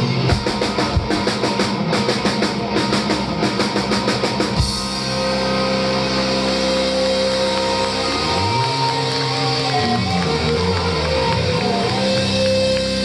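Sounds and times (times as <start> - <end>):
rock band playing: 0.0 - 13.0.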